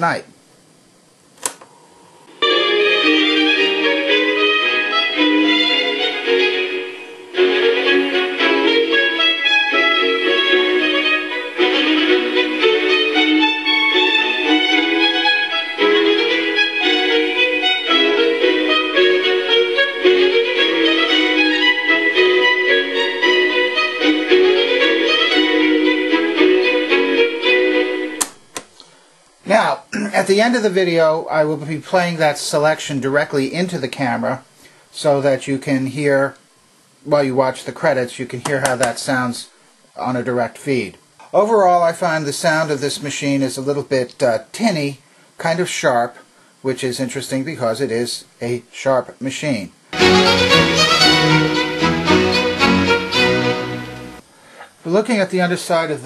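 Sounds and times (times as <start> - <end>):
violin music from small speaker: 2.3 - 28.2, 50.0 - 54.2.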